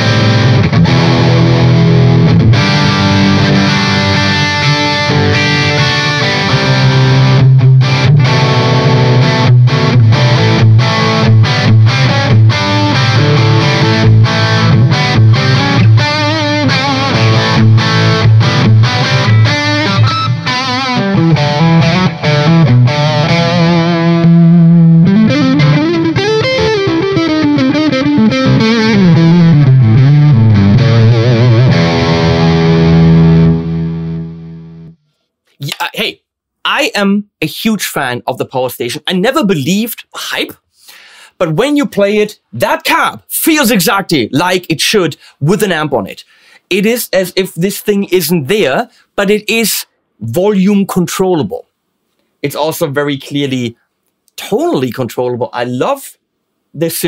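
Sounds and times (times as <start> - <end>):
distorted electric guitar: 0.0 - 35.9.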